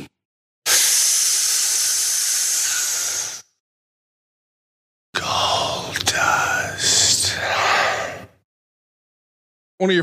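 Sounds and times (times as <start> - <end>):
loud steady hiss: 0.7 - 3.4.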